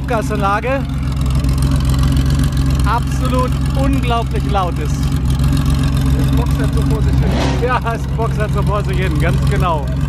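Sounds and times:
loud car engine idling: 0.0s - 10.0s.

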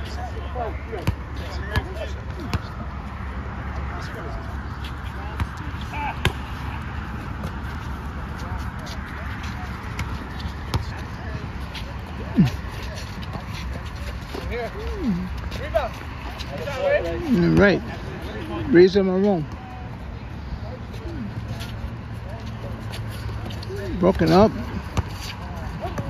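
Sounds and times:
distant voices: 0.0s - 26.0s.

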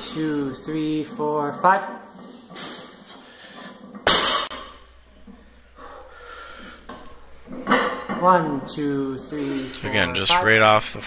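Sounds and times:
person breathing: 2.4s - 3.8s, 5.4s - 7.3s
barbell thudding on floor: 4.0s - 4.9s.

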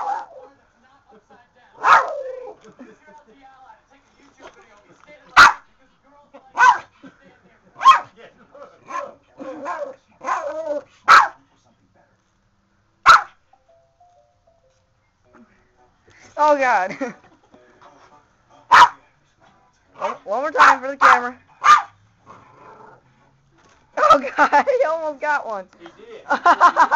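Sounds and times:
small dog barking: 0.0s - 0.5s, 1.8s - 2.6s, 5.4s - 5.6s, 6.5s - 6.9s, 7.8s - 8.1s, 8.8s - 11.4s, 13.0s - 13.4s, 18.7s - 19.0s, 20.0s - 22.0s.

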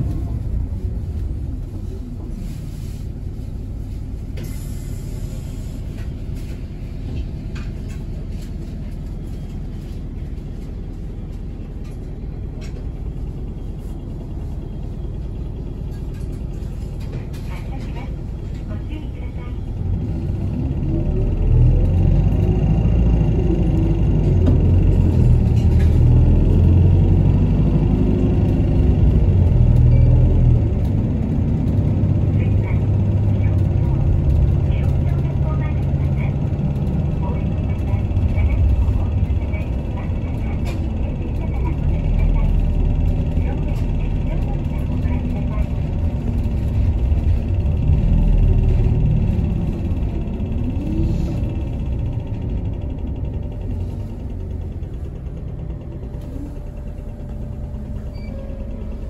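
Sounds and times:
bus engine rumble: 0.0s - 59.0s.

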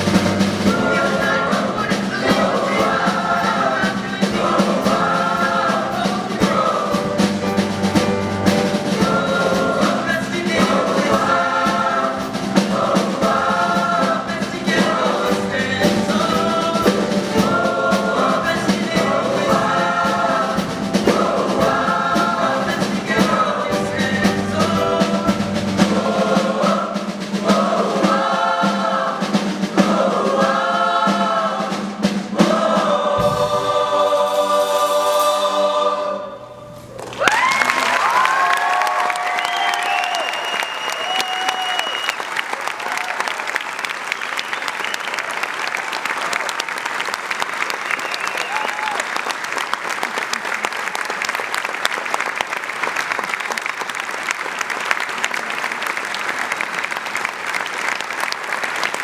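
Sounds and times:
boys' choir singing: 0.0s - 8.0s, 8.7s - 36.6s
audience applause: 36.9s - 59.0s
whoops and cheers: 37.0s - 43.6s, 47.9s - 49.2s.

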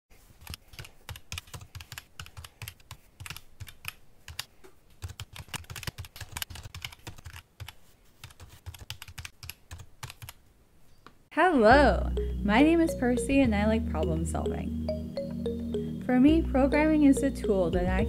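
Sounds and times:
typing on computer keyboard: 0.4s - 10.4s.

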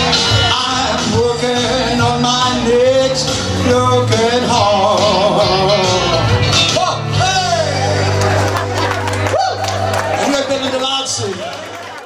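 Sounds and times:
guitar melody: 0.0s - 11.2s
steady bass: 0.0s - 11.5s
live country band playing: 0.0s - 12.0s.

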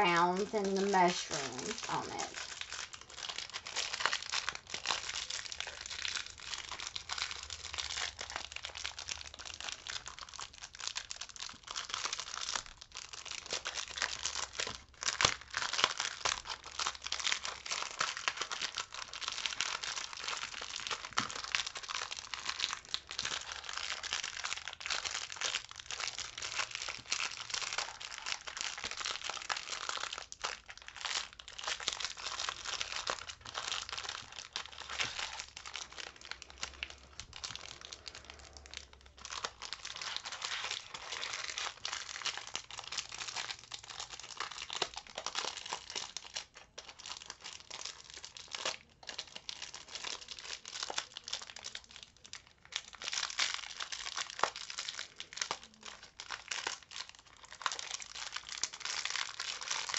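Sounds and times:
plastic packaging crinkling: 0.0s - 59.9s.

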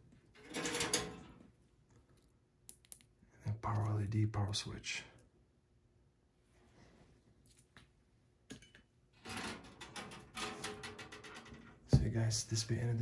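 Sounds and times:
clatter of computer parts: 0.4s - 1.4s, 8.5s - 11.7s.

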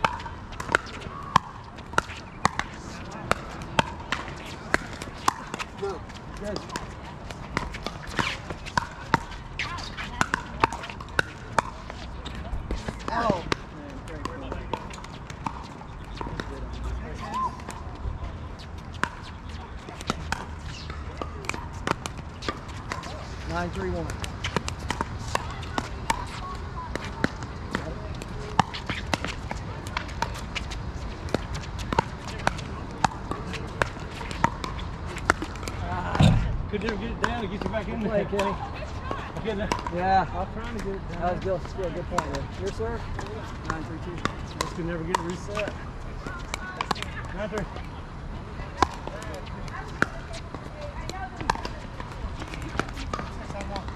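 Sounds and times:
ball bouncing on hard court: 0.0s - 17.8s, 31.3s - 40.0s, 42.1s - 47.4s, 48.8s - 53.9s
players' voices: 0.0s - 53.9s.

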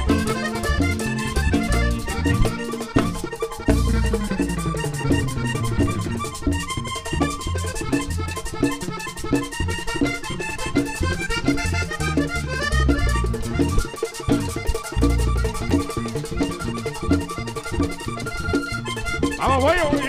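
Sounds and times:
bass line: 0.0s - 20.0s
button accordion melody: 0.0s - 20.0s
percussion beat: 0.0s - 20.0s.

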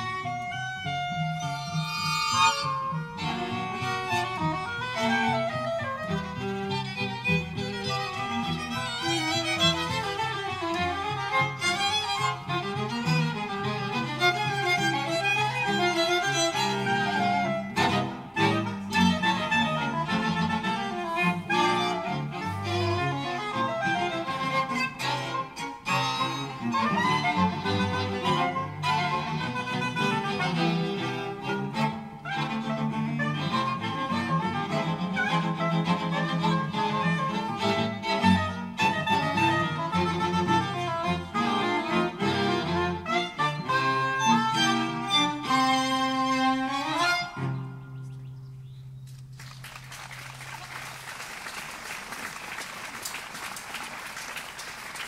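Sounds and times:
string quartet playing: 0.0s - 48.3s.

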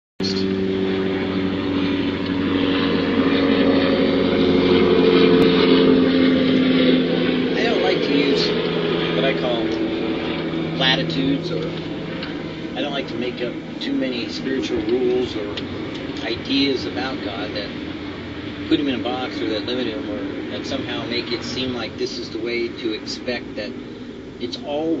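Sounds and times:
motor drone passing: 0.2s - 25.0s
man's voice: 7.6s - 8.5s, 12.8s - 15.6s, 16.2s - 17.7s, 18.7s - 23.7s, 24.4s - 25.0s.

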